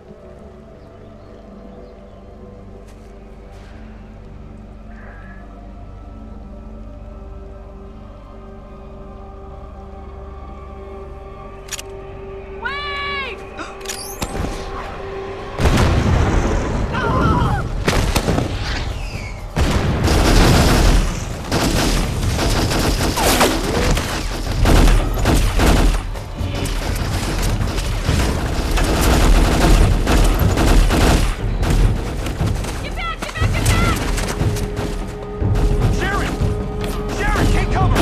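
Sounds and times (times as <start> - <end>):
tense droning film score: 0.0 - 38.0
rapid gunfire: 19.6 - 36.5.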